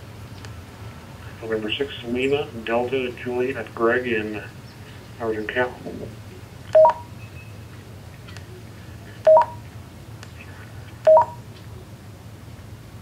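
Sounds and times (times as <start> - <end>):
electronic two-note beeps: 6.8 - 7.1, 9.3 - 9.6, 11.1 - 11.4.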